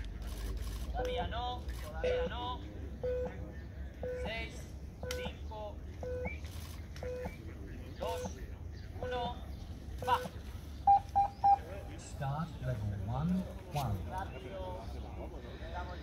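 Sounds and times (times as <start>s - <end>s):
voices talking: 0.0s - 16.0s
short electronic beeps: 6.0s - 7.4s, 10.8s - 11.7s
louder higher beeps: 10.9s - 11.6s.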